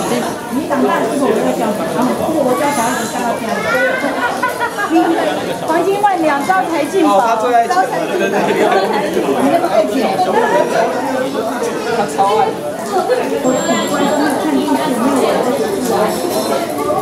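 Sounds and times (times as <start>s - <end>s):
chatter of many people: 0.0s - 17.0s.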